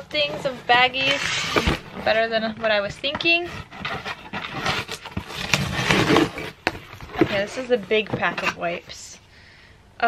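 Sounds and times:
cardboard flaps scraping and rustling: 0.0 - 8.9.

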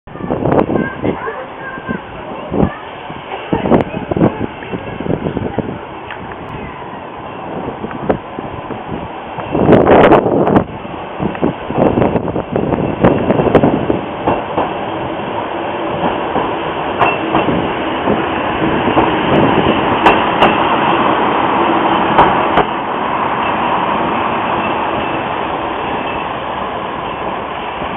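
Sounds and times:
diesel railcar engine passing: 0.1 - 27.9.

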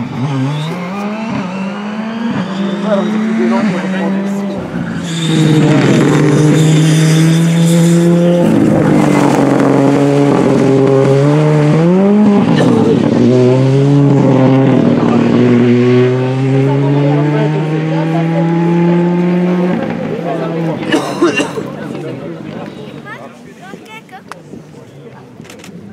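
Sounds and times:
rally car engine revving: 0.0 - 23.0.

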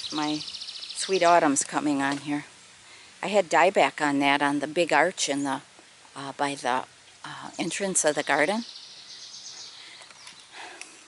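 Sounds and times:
songbird trilling: 0.0 - 2.4, 7.3 - 10.6.

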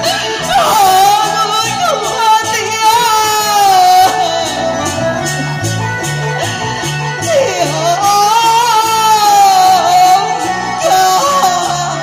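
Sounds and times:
person singing opera into a microphone: 0.0 - 5.5, 7.2 - 12.0
instrumental accompaniment: 0.0 - 12.0.

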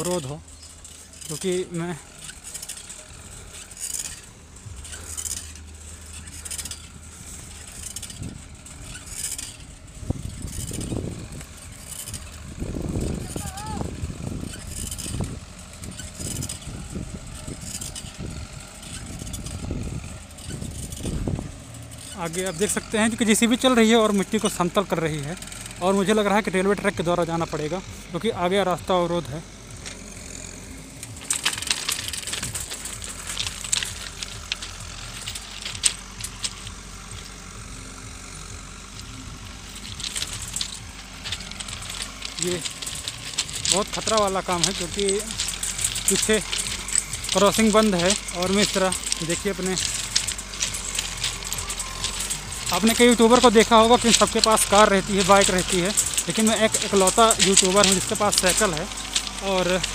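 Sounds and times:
bicycle on rough dirt track: 0.0 - 59.9
wind buffeting microphone: 7.4 - 21.9.

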